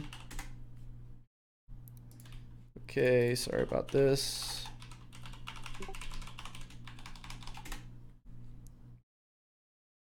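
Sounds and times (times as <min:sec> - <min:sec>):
computer keyboard typing: 0:00.0 - 0:00.5, 0:02.1 - 0:02.4, 0:03.5 - 0:07.9.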